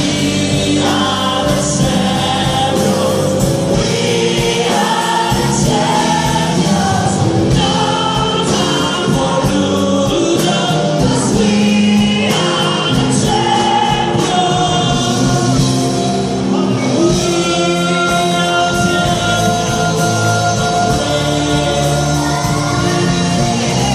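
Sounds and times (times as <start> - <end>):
choir singing held notes: 0.0 - 23.9
rock band playing live: 0.0 - 23.9.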